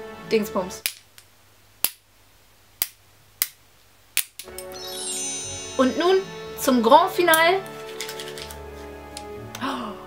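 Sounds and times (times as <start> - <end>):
music: 0.0 - 0.9, 4.4 - 10.0.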